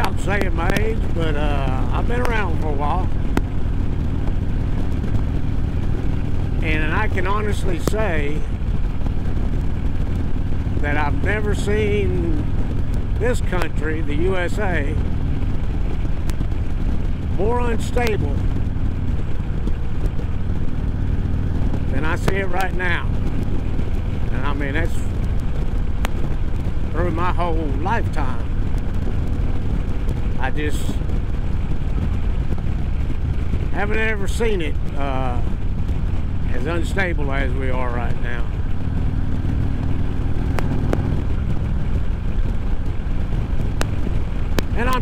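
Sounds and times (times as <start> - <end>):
motorcycle engine rumbling: 0.0 - 45.0
road noise: 0.0 - 45.0
wind noise: 0.0 - 45.0.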